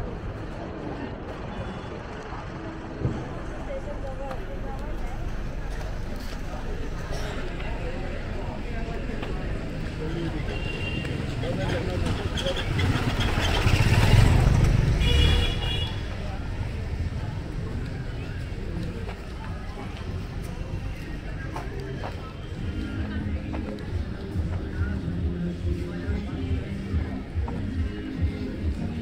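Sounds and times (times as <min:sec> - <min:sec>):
people's voices: 0:00.0 - 0:29.0
traffic rumble: 0:00.0 - 0:29.0
motor scooter passing: 0:11.4 - 0:15.8.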